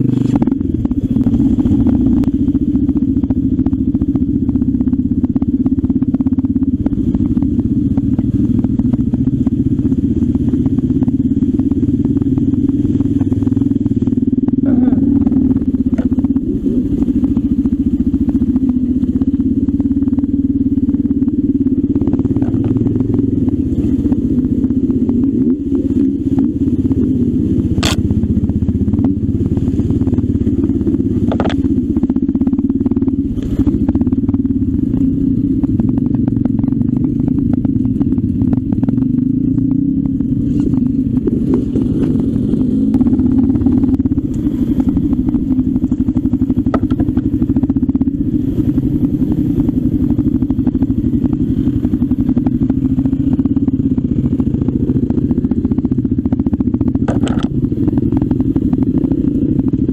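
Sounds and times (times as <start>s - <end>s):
motorcycle engine running: 0.0s - 59.9s.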